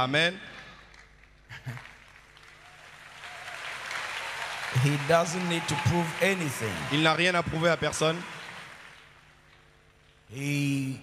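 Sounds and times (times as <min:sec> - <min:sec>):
congregation applauding: 0:00.8 - 0:10.2.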